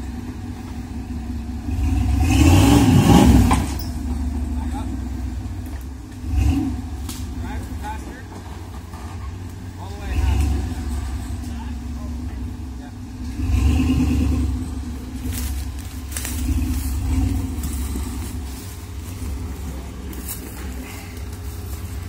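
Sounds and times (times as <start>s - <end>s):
truck engine revving: 0.0s - 22.0s.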